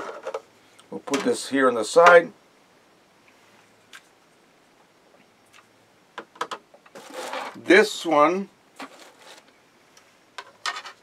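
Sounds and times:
light rubbing: 0:06.9 - 0:07.7
short scrape: 0:07.0 - 0:07.6.

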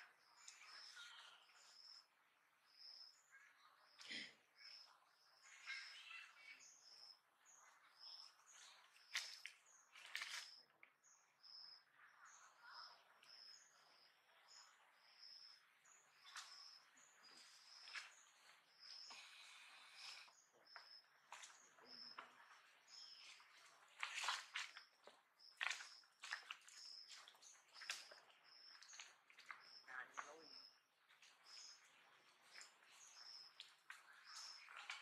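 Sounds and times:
faint high bird chirp: 0:00.0 - 0:35.0.

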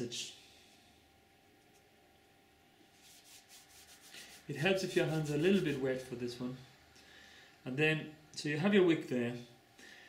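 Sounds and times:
hands rubbing cotton wool: 0:02.8 - 0:06.2.

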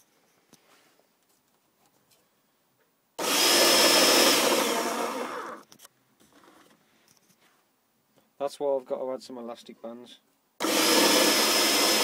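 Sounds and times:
cordless drill motor whirring: 0:03.2 - 0:05.7, 0:10.6 - 0:12.0.

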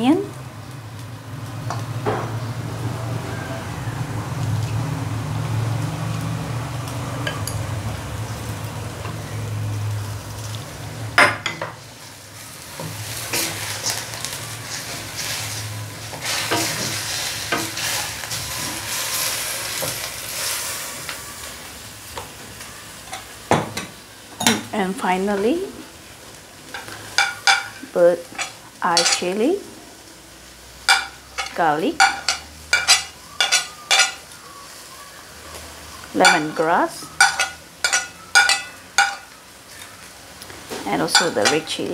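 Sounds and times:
food sizzling in oil: 0:00.0 - 0:41.9
metal spoon clinking: 0:27.2 - 0:29.3, 0:30.9 - 0:34.2, 0:36.2 - 0:39.3, 0:41.1 - 0:41.8
spatula scraping and knocking pan: 0:30.9 - 0:34.2, 0:41.0 - 0:41.9.

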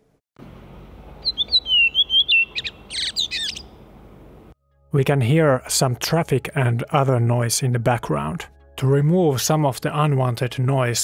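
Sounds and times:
bird whistling song: 0:01.2 - 0:03.8.

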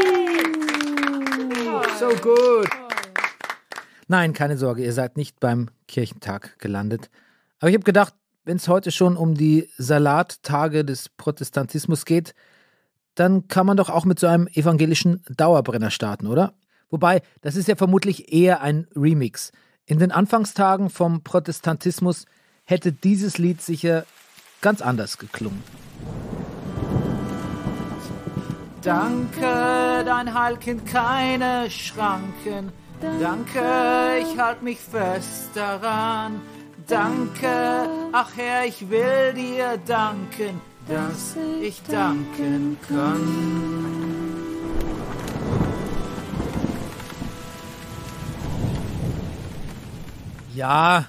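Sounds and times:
steady rain: 0:00.0 - 0:03.8, 0:22.1 - 0:51.0
thunder rumbling: 0:25.6 - 0:34.3, 0:42.8 - 0:50.6
low thunder-like rumble: 0:25.8 - 0:28.9.

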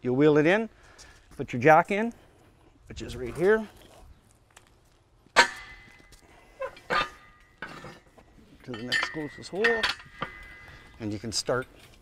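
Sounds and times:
sharp metal clank: 0:05.4 - 0:06.1, 0:06.8 - 0:08.0, 0:08.7 - 0:10.9
steel jack parts clanking: 0:05.4 - 0:12.0.

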